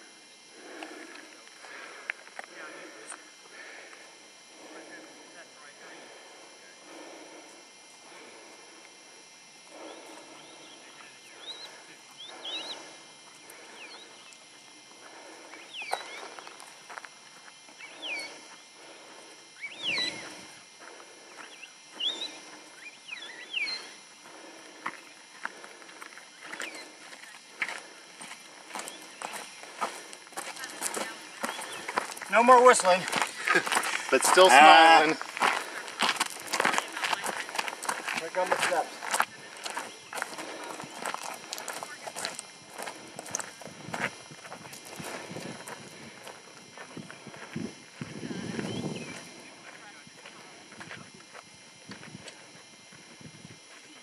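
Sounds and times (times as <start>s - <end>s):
footsteps on gravel: 9.7s - 52.6s.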